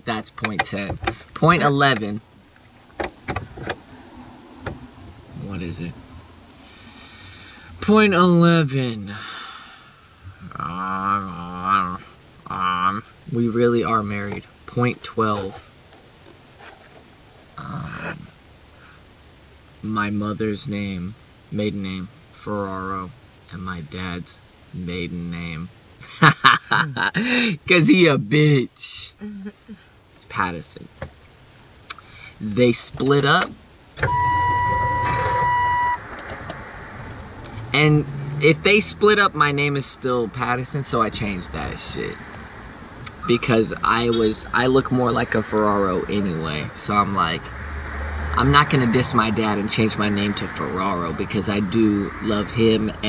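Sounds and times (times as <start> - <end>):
high electronic beep: 34.0 - 36.1
low hum: 34.0 - 53.0.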